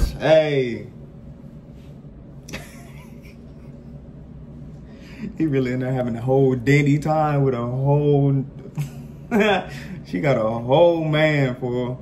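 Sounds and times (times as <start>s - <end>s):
low electrical hum: 0.0s - 12.0s
person laughing softly: 2.5s - 4.0s.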